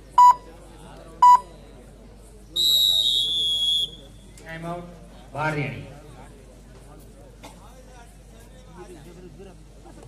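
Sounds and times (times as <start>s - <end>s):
short electronic beeps: 0.2s - 0.4s, 1.2s - 1.5s.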